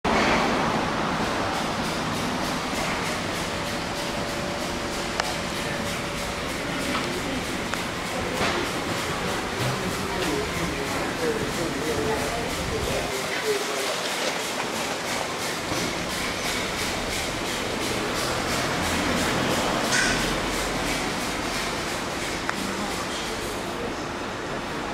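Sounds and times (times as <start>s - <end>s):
steady background noise: 0.1s - 24.9s
faint indistinct voices: 1.3s - 24.9s.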